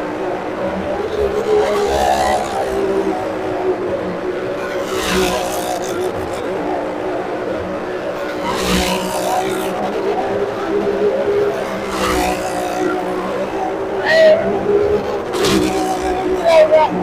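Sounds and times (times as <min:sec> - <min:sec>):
motorcycle engine running hard: 0:00.0 - 0:17.0.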